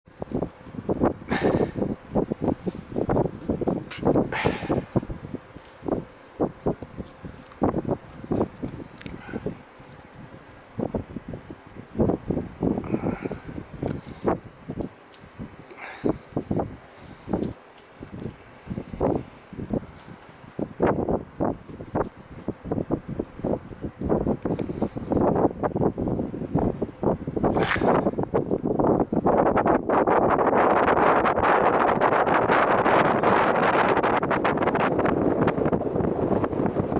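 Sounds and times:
wind buffeting microphone: 0.0s - 36.9s.

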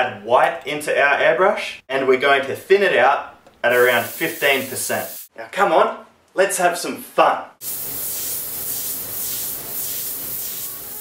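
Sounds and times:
airbrush hissing: 3.7s - 5.3s, 7.6s - 11.0s.

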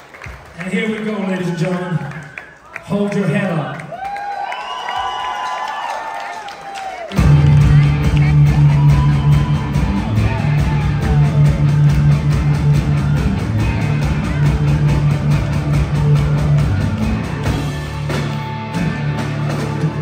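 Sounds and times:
live rock band: 7.1s - 20.0s.

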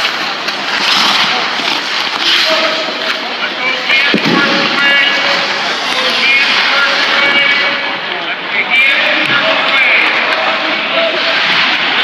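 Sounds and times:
ice rink din: 0.0s - 12.0s
indistinct voices: 0.0s - 12.0s.

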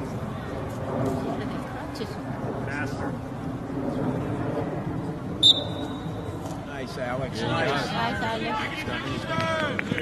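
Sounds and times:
referee's whistle blast: 5.4s - 6.0s
spectators' voices: 5.4s - 10.0s.

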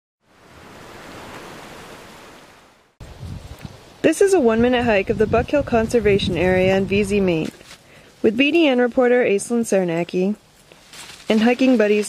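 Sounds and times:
wind on microphone: 0.5s - 7.6s.

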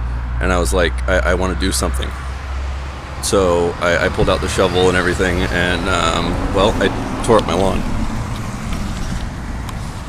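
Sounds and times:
steady low rumble: 3.2s - 9.2s.

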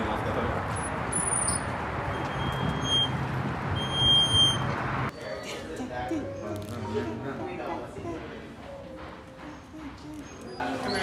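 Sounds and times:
traffic rumble: 0.0s - 5.2s.

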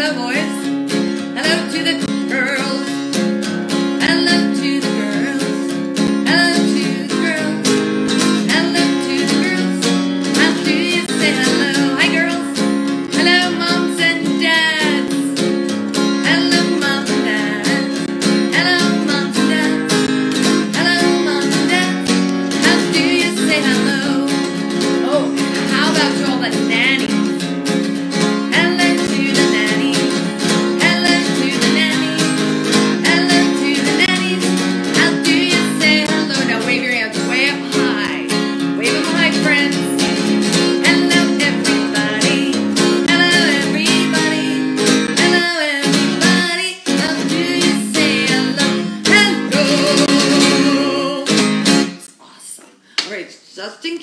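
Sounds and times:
strummed acoustic guitar: 0.0s - 52.1s
woman singing: 0.0s - 52.7s.

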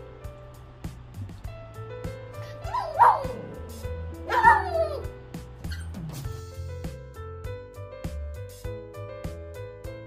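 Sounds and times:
background music: 0.0s - 10.0s
small dog yipping: 2.5s - 3.6s, 4.3s - 6.0s.

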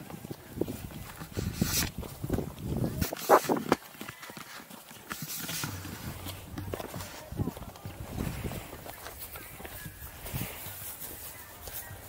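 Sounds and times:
footsteps on dirt trail: 0.0s - 12.0s
people talking: 2.7s - 12.0s.

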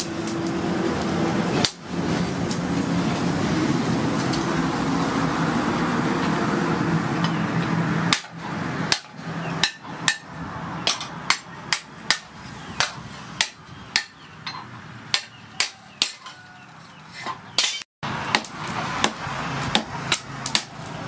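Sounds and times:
hammer striking steel on anvil: 8.1s - 16.4s.

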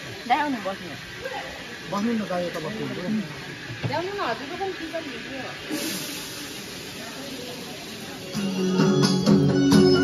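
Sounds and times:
steady hiss: 0.0s - 10.0s
people chatting: 0.1s - 8.9s.

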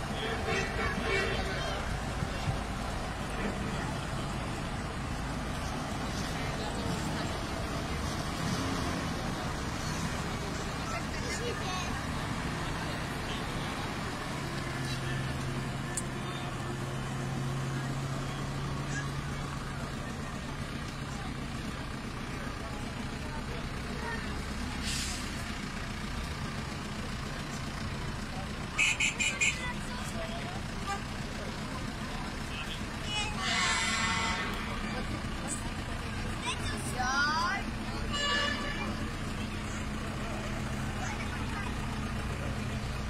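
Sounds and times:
onlookers chattering: 0.0s - 43.0s
truck engines running: 0.0s - 43.0s.

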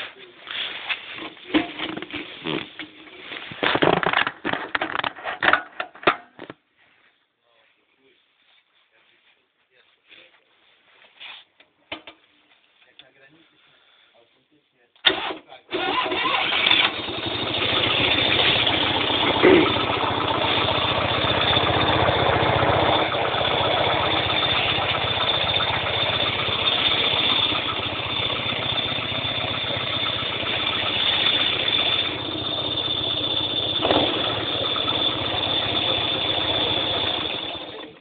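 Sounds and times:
air-cooled engine running: 15.1s - 38.0s.

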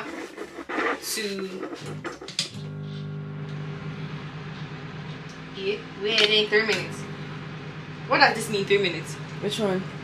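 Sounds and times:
microwave running hum: 1.8s - 10.0s.

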